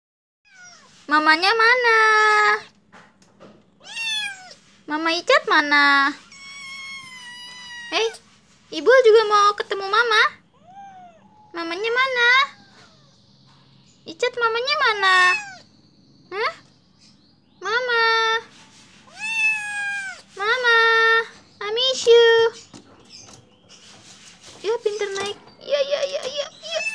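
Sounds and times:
kitten meowing: 3.8 - 4.6, 6.2 - 8.2, 10.5 - 11.6, 15.2 - 15.6, 19.1 - 20.3, 26.6 - 26.9.

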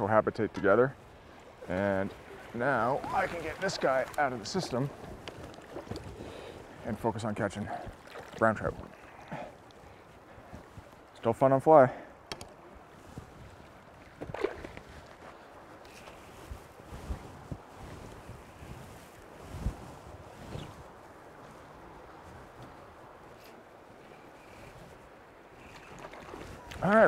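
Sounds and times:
stream rushing: 1.0 - 12.9.

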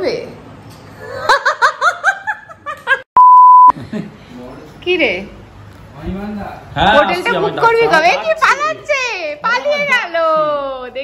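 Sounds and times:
censor bleep: 3.2 - 3.7.

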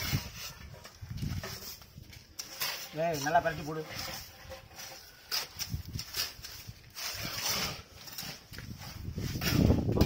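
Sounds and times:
trowel scraping wet mortar: 0.0 - 10.0.

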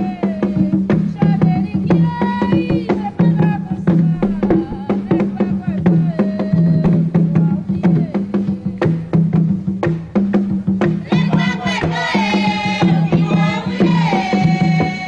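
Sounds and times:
voices singing a chant: 0.0 - 9.0, 10.9 - 15.0
fast hand-drum strikes: 0.0 - 15.0
low drum tones: 0.0 - 15.0.

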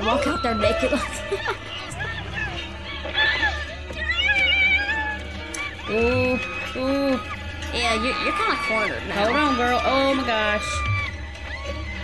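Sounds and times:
high wavering cry-like sounds: 0.0 - 12.0.

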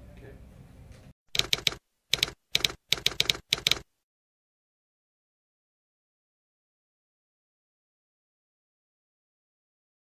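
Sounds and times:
typewriter key clacks: 1.4 - 3.8.

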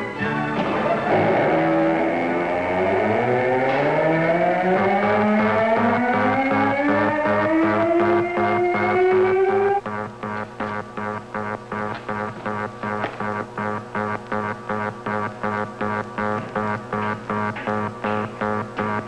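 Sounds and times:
electronic tones gliding upward: 1.1 - 9.8
pulsing beat: 1.3 - 19.0.

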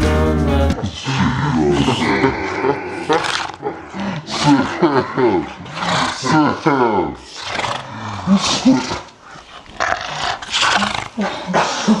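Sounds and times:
harsh growling roaring voice: 0.2 - 9.1.

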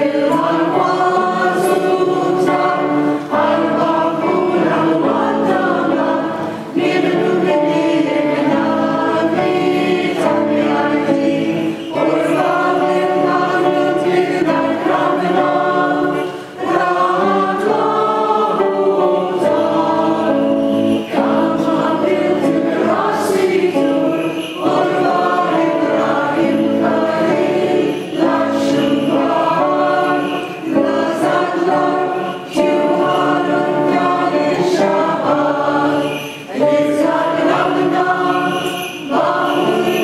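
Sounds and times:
choir singing a hymn: 0.0 - 40.0.

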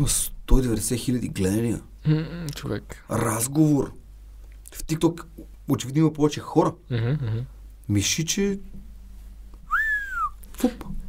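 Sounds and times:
person whistling a sliding note: 9.7 - 10.4
short exhalation: 9.7 - 10.9.

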